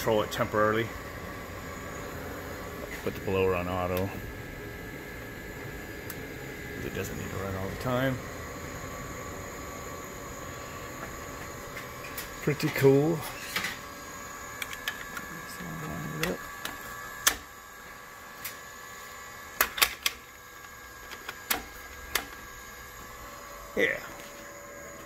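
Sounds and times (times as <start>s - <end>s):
electrical whine and hum: 0.0s - 25.0s.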